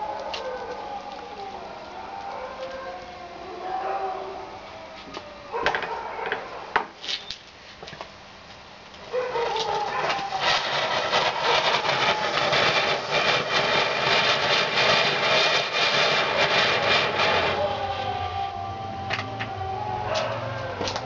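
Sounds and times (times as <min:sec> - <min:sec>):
firework hissing and crackling: 0:00.0 - 0:03.1, 0:09.0 - 0:21.0.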